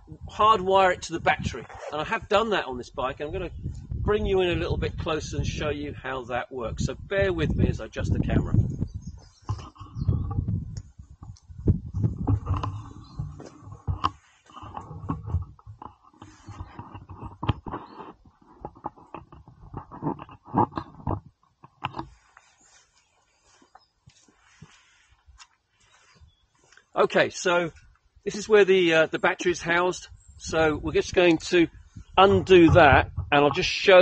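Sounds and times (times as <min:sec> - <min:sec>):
wind on microphone: 0:00.0 - 0:06.0, 0:06.6 - 0:22.2, 0:30.0 - 0:34.0
camera handling rumble: 0:07.5 - 0:22.7
knocks and clicks: 0:09.5 - 0:22.2.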